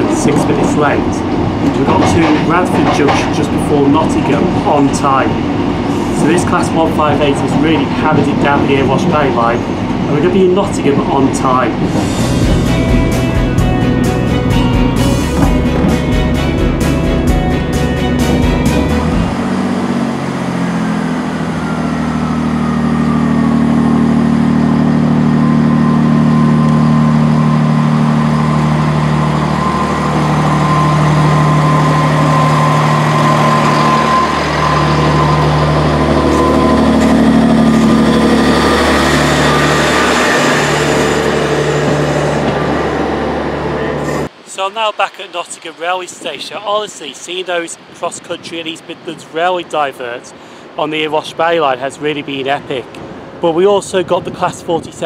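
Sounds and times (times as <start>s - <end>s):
train diesel engines running: 0.0s - 53.6s
train whine falling in pitch: 11.5s - 44.3s
music with steady beat: 12.1s - 19.3s.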